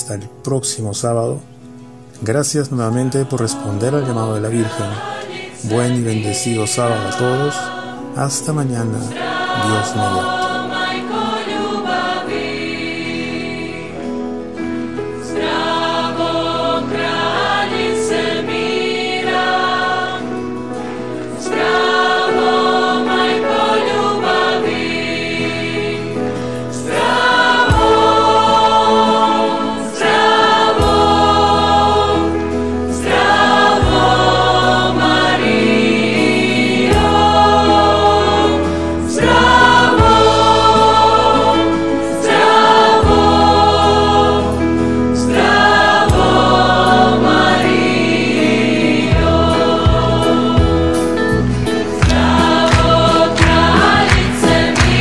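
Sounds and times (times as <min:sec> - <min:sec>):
choir singing with instruments: 0:02.2 - 0:55.0.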